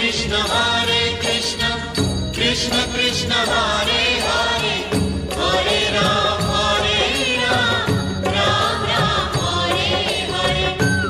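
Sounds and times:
film song with chant-like vocals: 0.0s - 11.0s.

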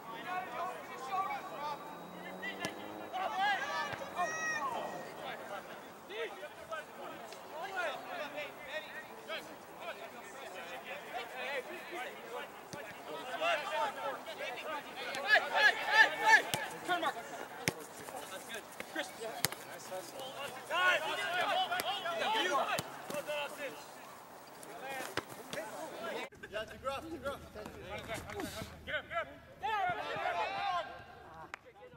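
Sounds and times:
players shouting: 0.0s - 26.3s, 29.6s - 31.2s.

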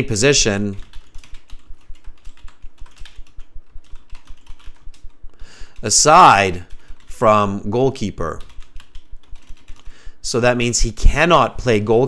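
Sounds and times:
rapid keyboard typing: 0.0s - 12.0s.

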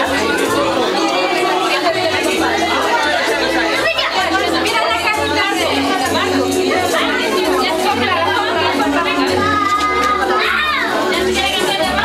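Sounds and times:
chatter of many guests: 0.0s - 12.0s.

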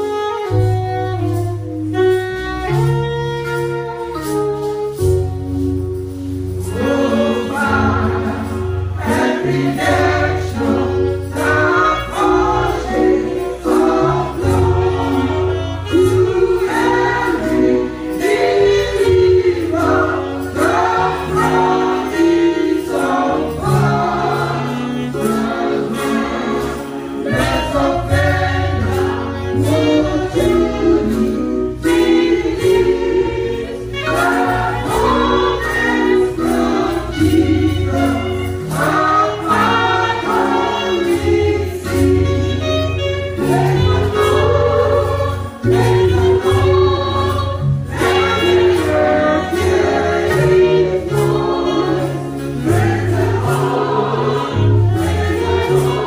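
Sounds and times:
gospel choir singing: 0.0s - 56.0s
instrumental accompaniment with beat: 0.0s - 56.0s.

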